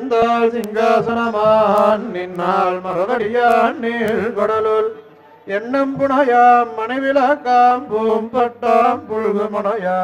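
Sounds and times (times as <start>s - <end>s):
person chanting verses: 0.0s - 10.0s.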